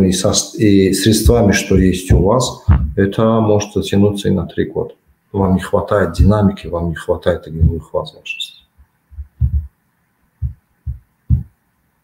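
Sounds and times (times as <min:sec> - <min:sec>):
low dull thumps: 0:01.2 - 0:03.1, 0:08.8 - 0:09.8, 0:10.4 - 0:11.6.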